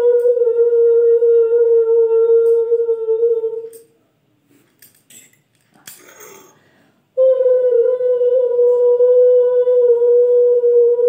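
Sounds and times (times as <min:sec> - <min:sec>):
woman humming a long note: 0:00.0 - 0:03.9, 0:07.2 - 0:11.0.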